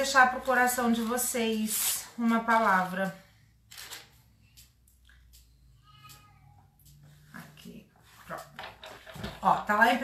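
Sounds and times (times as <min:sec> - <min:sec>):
pages rustling: 0:03.6 - 0:04.3.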